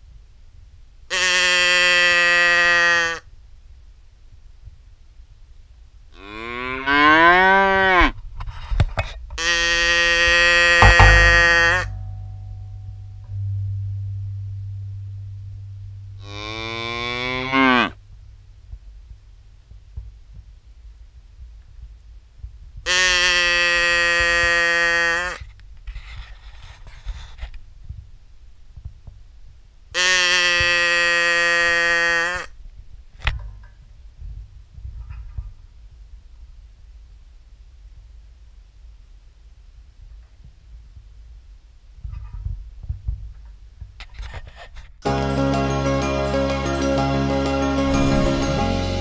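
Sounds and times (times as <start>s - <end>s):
cattle mooing: 16.2s - 18.0s.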